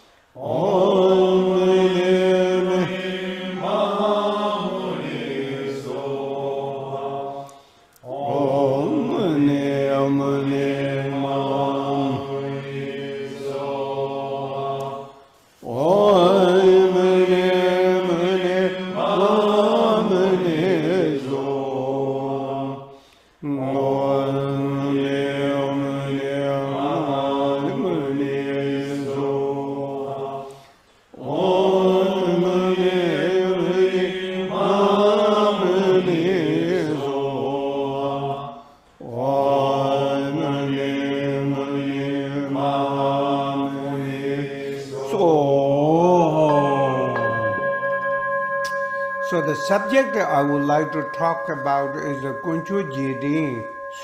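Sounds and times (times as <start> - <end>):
man chanting: 8.1 - 13.6, 15.6 - 22.0, 23.4 - 29.4, 32.1 - 37.5, 38.5 - 47.7, 49.1 - 54.0.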